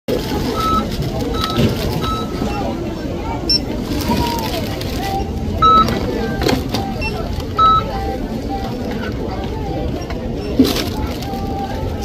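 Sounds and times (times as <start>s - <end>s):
store background noise: 0.1s - 12.0s
barcode scanner beeping: 0.4s - 2.8s, 3.4s - 4.2s, 5.1s - 8.1s.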